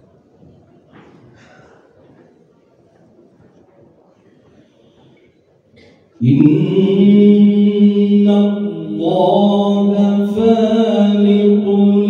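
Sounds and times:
man chanting through microphone: 6.2 - 12.0.

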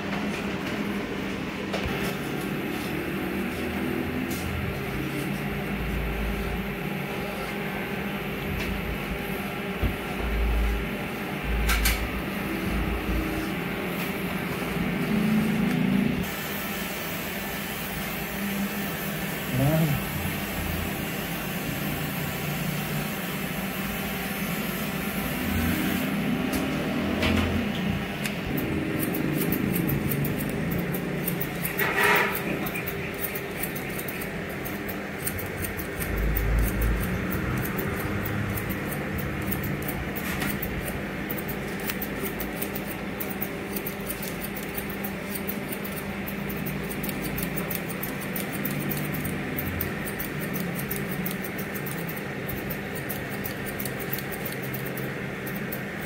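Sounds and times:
electric hair clipper buzzing: 1.8 - 56.0.

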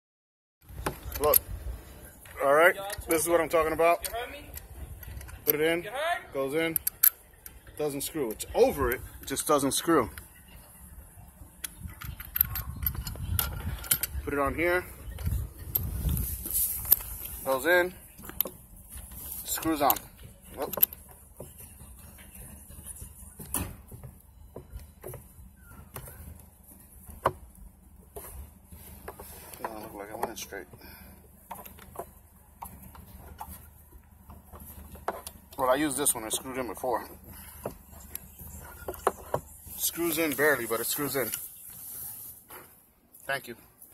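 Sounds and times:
metal attachments clicking and knocking: 0.7 - 1.6, 2.2 - 10.3, 11.6 - 22.8, 23.4 - 41.5.

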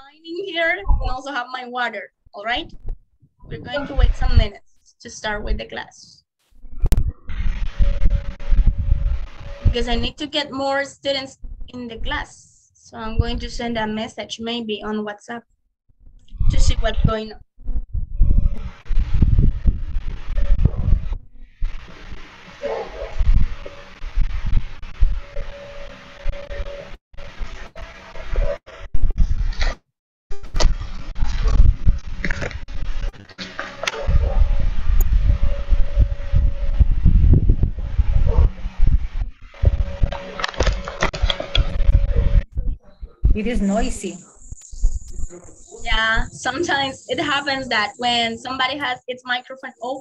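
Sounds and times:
steady hum: 2.4 - 5.8, 6.5 - 14.1, 16.0 - 29.6, 30.3 - 49.5
microphone rumble and crackle: 2.5 - 5.6, 6.4 - 10.2, 11.4 - 12.3, 13.0 - 14.0, 16.0 - 48.2.

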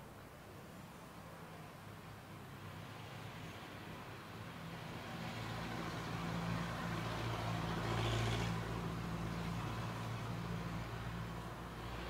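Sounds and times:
vehicle passing: 4.4 - 12.0.

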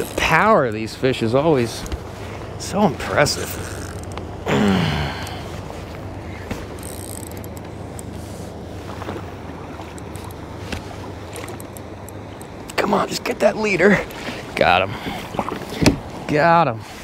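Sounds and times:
water lapping against hull: 0.0 - 17.0.

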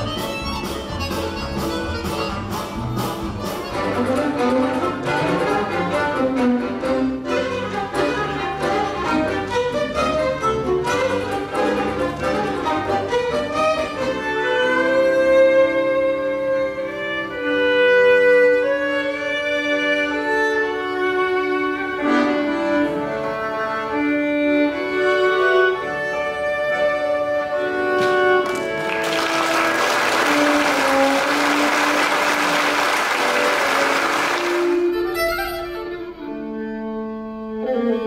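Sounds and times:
fiddle-led folk band playing: 0.0 - 38.0
long-held fiddle notes: 0.0 - 38.0.

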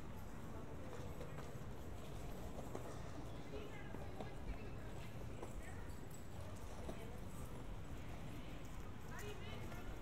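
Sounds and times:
faint voices of passers-by: 0.0 - 10.0.

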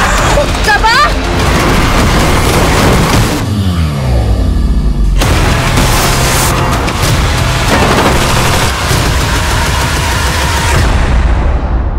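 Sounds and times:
vehicle engine noise: 1.2 - 10.6.

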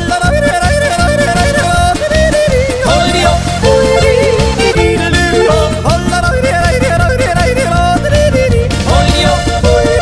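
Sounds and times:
steady musical accompaniment: 0.0 - 10.0
yodeling voice: 0.0 - 10.0.

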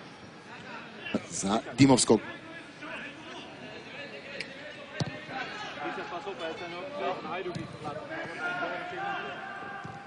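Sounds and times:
stadium crowd and voices: 0.0 - 10.0.

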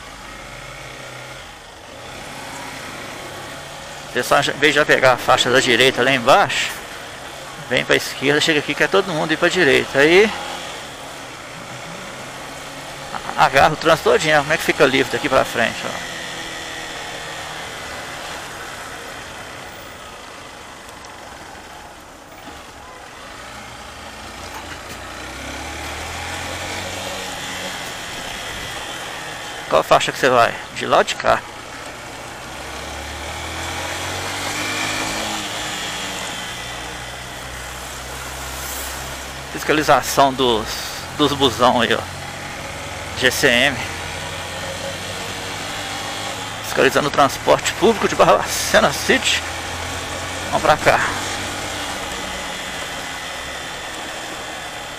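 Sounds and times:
motorcycle engine running: 0.0 - 30.8, 31.4 - 54.9
road noise: 0.0 - 54.9.

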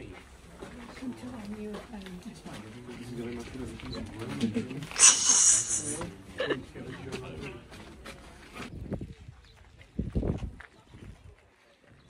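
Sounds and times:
loud hissy rush: 4.9 - 6.0.

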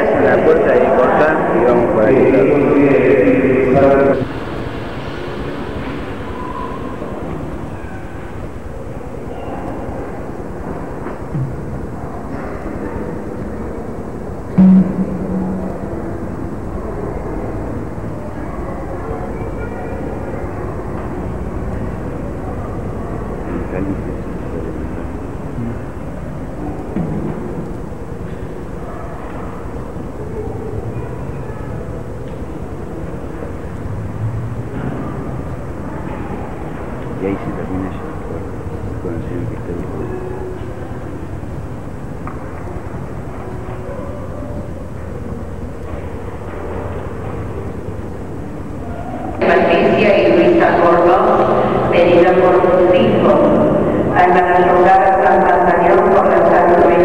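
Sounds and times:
faint indistinct voices: 0.0 - 57.0
muffled room noise: 0.0 - 57.0
loud knock: 14.5 - 16.0.

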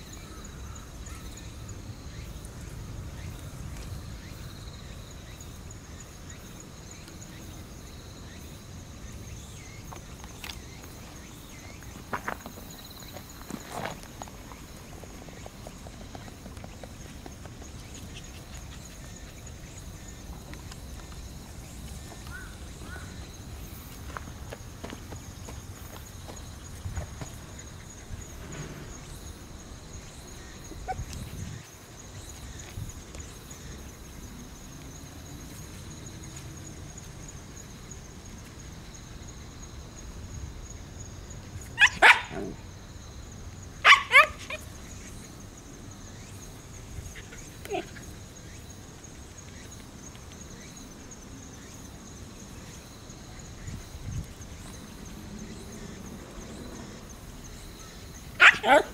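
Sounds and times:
quiet outdoor background: 0.0 - 58.9
dog barking: 41.8 - 42.6, 43.8 - 44.6, 58.4 - 58.9.

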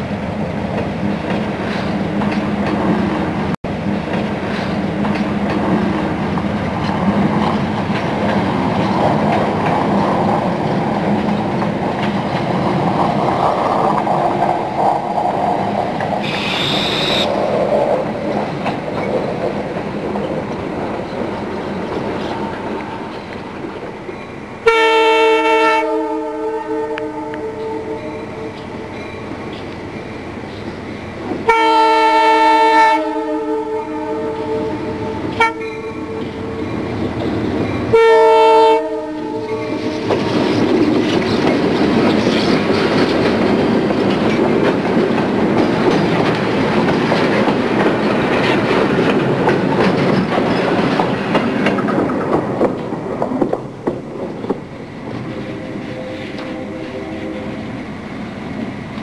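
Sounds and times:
train wheels rumbling on rails: 0.0 - 59.0
locomotive air horn: 16.2 - 17.3, 24.6 - 28.3, 31.5 - 36.2, 37.9 - 40.0, 55.4 - 57.6.

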